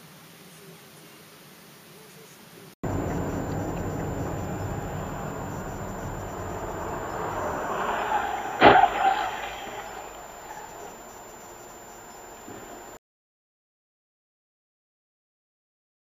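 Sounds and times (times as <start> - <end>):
car road and engine noise: 2.8 - 13.0
sharp bang with ring: 2.9 - 10.9.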